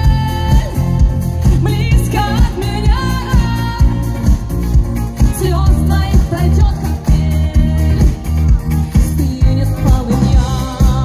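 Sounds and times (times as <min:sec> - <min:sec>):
woman singing: 0:00.0 - 0:04.6, 0:05.2 - 0:11.0
pop band heavy beat: 0:00.0 - 0:11.0.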